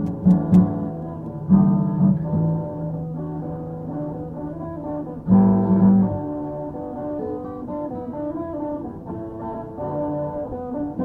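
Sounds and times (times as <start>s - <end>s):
rock guitars sustained chords: 0.0s - 11.0s.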